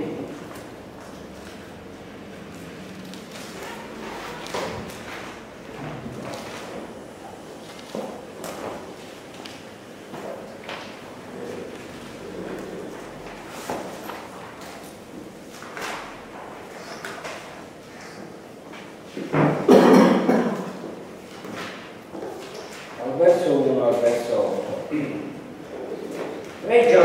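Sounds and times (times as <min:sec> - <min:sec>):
book pages turning: 0:02.6 - 0:05.4, 0:07.5 - 0:19.0.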